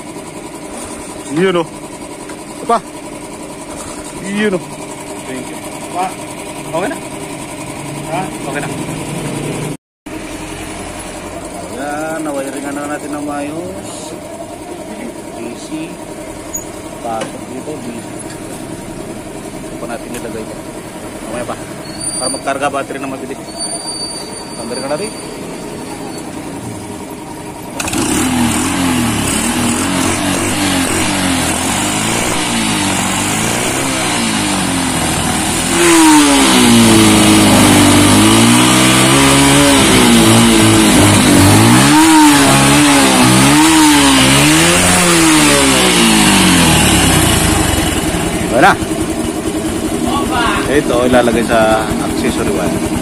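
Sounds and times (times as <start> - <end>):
motorcycle engine revving: 0.0 - 53.0.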